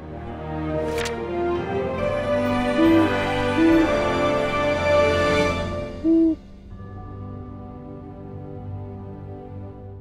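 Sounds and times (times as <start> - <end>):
soft sustained music tones: 0.0 - 10.0
owl hoot: 2.7 - 4.0, 6.0 - 6.4.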